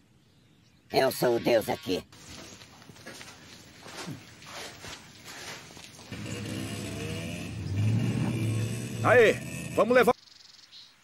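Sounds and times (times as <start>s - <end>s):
faint scuffs and rustles: 2.2s - 6.1s
motorcycle engine running: 6.1s - 9.8s.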